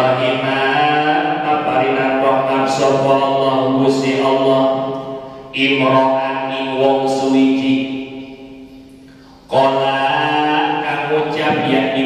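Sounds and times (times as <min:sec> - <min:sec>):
man chanting recitation: 0:00.0 - 0:04.9, 0:05.5 - 0:08.0, 0:09.5 - 0:12.0.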